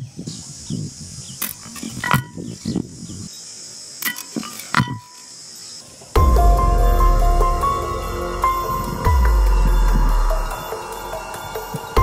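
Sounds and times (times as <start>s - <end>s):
high insect buzz: 0.1s - 12.0s.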